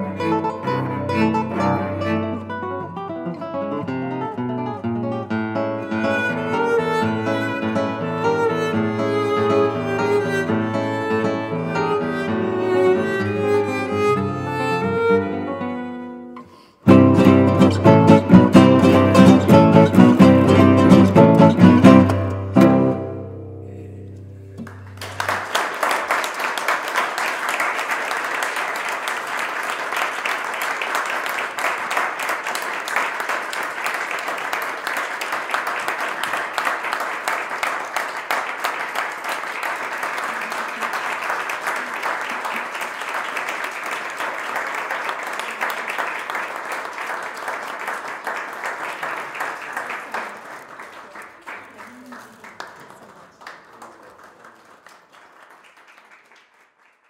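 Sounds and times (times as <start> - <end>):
audience applauding: 0.0 - 15.4, 24.5 - 57.0.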